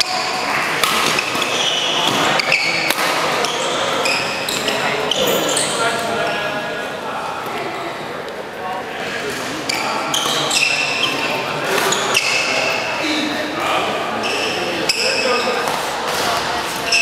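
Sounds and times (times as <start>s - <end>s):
voices in a hall: 0.0s - 17.0s
racket hitting shuttlecock: 0.1s - 3.6s
shoes squeaking on floor: 1.0s - 6.4s, 9.6s - 12.9s, 14.2s - 17.0s.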